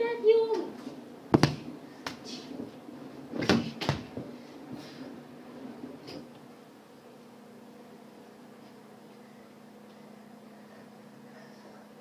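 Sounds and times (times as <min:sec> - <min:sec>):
sharp knocks: 0:01.3 - 0:01.7.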